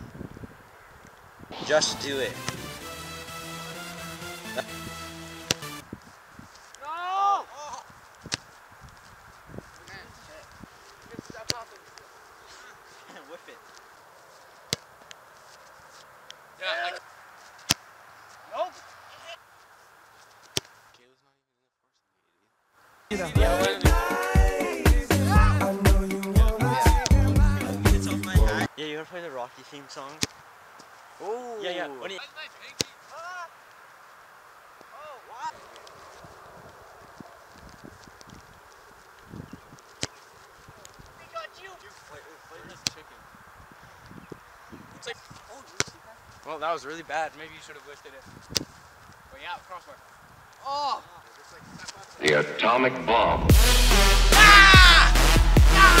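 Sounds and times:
steady background hiss: 0.0s - 24.9s, 25.7s - 53.5s
footsteps on grass: 1.5s - 21.0s, 29.3s - 52.4s
soccer ball kick thud: 5.4s - 5.8s
soccer ball thuds: 5.4s - 6.6s, 14.7s - 15.0s, 26.9s - 27.6s, 39.7s - 41.0s, 42.7s - 43.0s, 45.3s - 46.0s.

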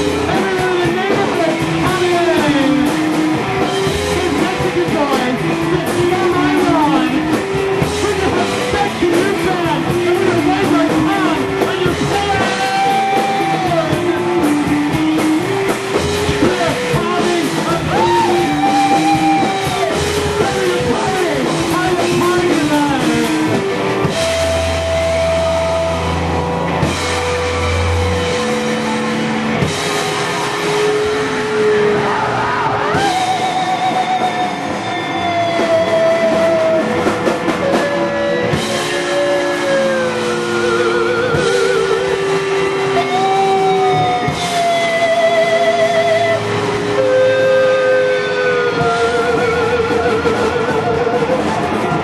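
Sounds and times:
bass guitar: 0.0s - 52.0s
drums: 0.0s - 52.0s
electric guitars sliding notes: 0.0s - 52.0s.

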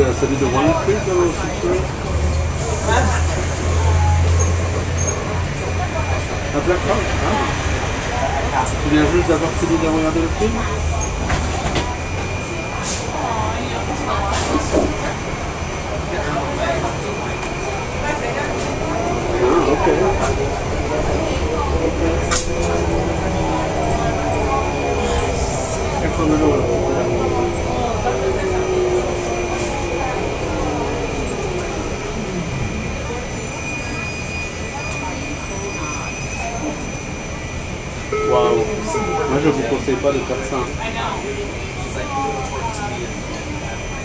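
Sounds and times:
transit vehicle rumble from inside: 0.0s - 44.0s.

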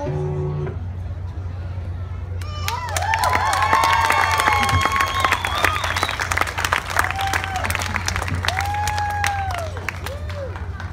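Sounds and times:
audience clapping: 2.4s - 10.9s
person cheering: 7.0s - 7.8s, 8.5s - 10.6s.

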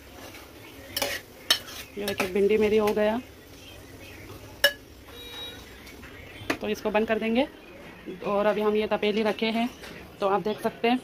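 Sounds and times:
spoon scraping through vegetables: 0.0s - 3.0s.

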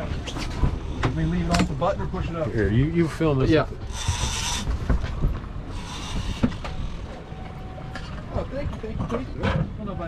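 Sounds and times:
outboard motors rumbling: 0.0s - 10.0s
water noise: 0.0s - 10.0s
wind: 0.0s - 10.0s.

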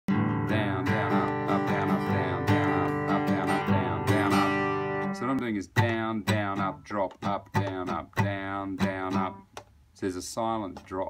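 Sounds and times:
acoustic guitar strumming: 0.1s - 9.5s.

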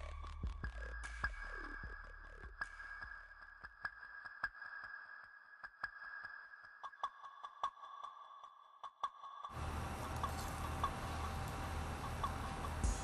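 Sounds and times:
low hum: 9.6s - 13.0s.

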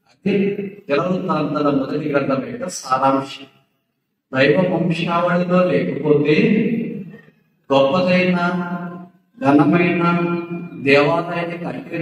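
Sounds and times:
man preaching into a microphone: 0.0s - 3.7s, 4.3s - 12.0s.

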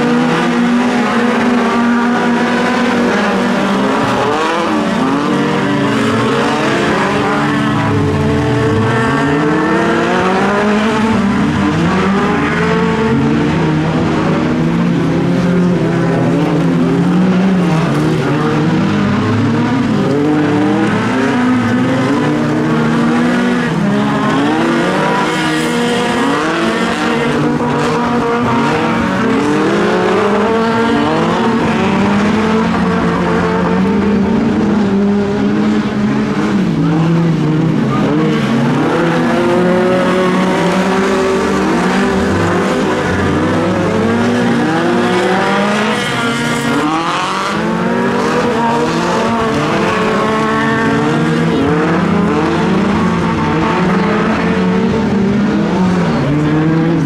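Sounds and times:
racing car engines: 0.0s - 57.0s.

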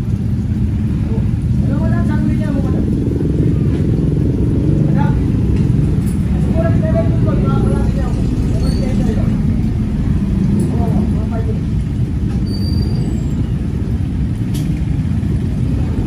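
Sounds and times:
low rumbling background noise: 0.0s - 16.0s.

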